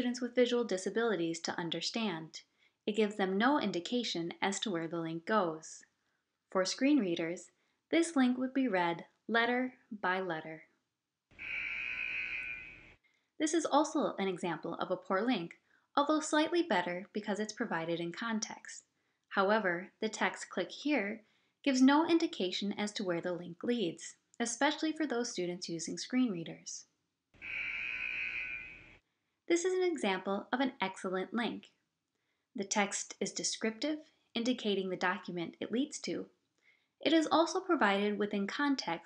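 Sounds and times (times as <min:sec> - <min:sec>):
harsh buzzer: 0:11.4 - 0:12.9, 0:27.4 - 0:28.9.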